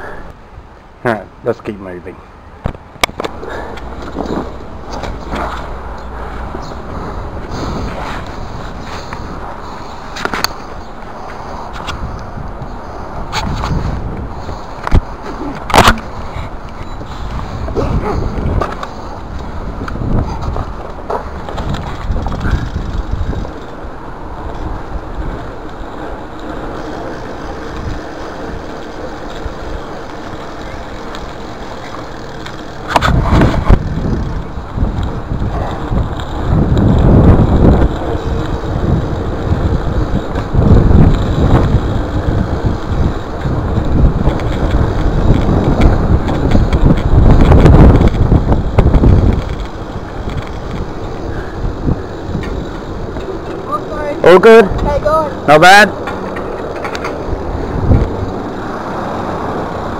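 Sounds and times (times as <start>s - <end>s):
bike rolling on concrete: 0.0s - 59.9s
wind buffeting microphone: 2.3s - 59.9s
uneven rumbling: 2.6s - 59.9s.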